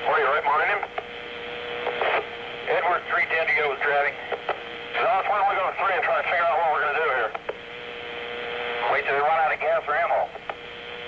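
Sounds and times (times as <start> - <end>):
radio static hiss: 0.0 - 11.0
steady radio tone: 0.0 - 11.0
voices over tinny radio: 0.0 - 11.0.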